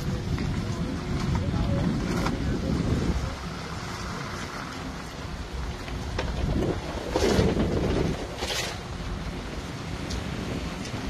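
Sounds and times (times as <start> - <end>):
slow street traffic: 0.0 - 11.0
wind buffeting microphone: 0.0 - 11.0.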